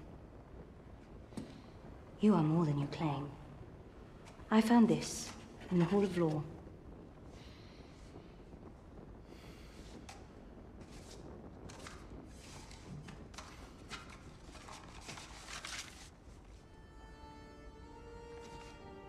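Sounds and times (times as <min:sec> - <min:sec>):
rustling and shuffling handling: 0:09.7 - 0:16.7
soft sustained music notes: 0:16.6 - 0:19.0.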